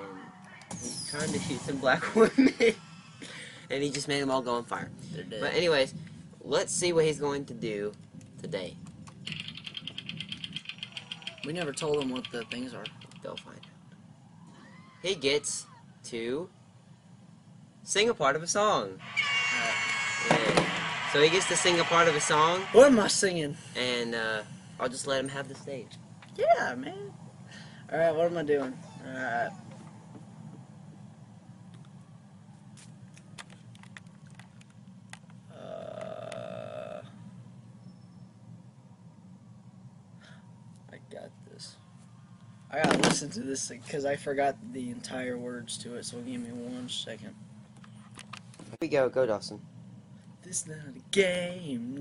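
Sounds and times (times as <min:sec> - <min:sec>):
low room hum: 0:00.0 - 0:52.0
prize wheel ticking: 0:09.3 - 0:13.7.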